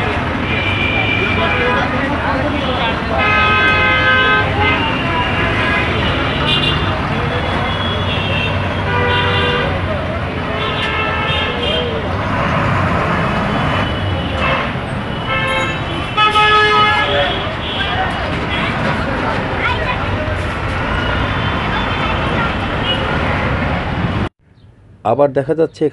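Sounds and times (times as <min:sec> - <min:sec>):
vehicle horns honking: 0:00.0 - 0:12.1, 0:13.4 - 0:18.8, 0:20.9 - 0:23.2
vehicle engines running: 0:00.0 - 0:24.3.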